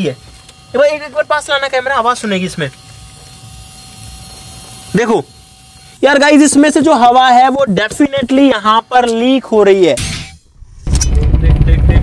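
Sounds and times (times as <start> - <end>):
air hissing from tyre: 2.3 - 6.4.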